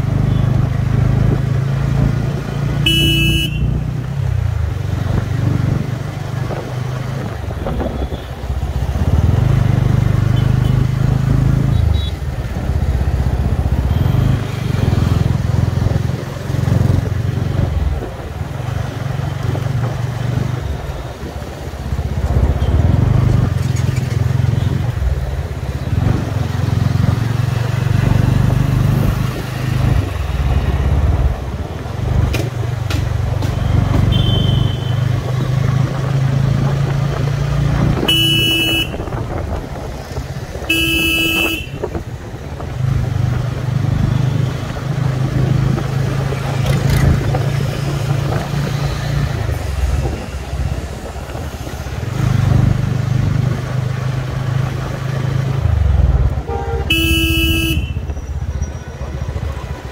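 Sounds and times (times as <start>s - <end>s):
vehicle horn beeps: 2.8s - 3.8s, 11.7s - 12.2s, 13.8s - 14.4s, 34.1s - 35.0s, 38.0s - 39.0s, 40.7s - 41.9s, 56.4s - 59.8s.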